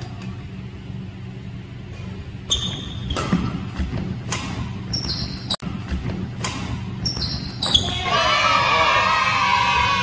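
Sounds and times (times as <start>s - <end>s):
sneakers squeaking on floor: 2.4s - 8.2s
racket hitting shuttlecock: 2.6s - 7.9s.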